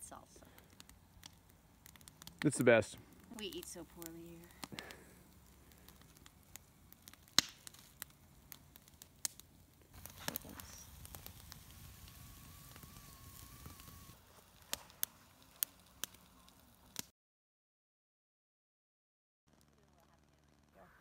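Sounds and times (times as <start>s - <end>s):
campfire crackling and popping: 0.0s - 17.1s, 19.5s - 21.0s.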